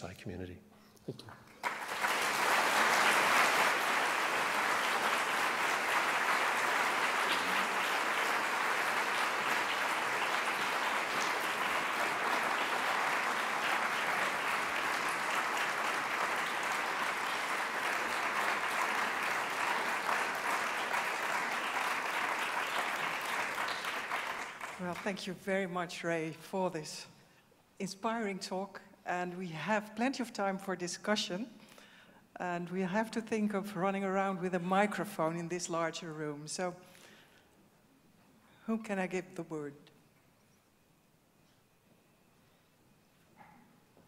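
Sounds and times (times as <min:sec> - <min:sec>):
audience applauding: 0:01.4 - 0:25.1.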